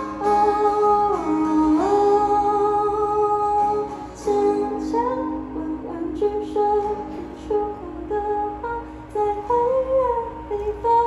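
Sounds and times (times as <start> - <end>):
acoustic guitar: 0.0 - 11.0
woman singing a long note: 0.0 - 11.0.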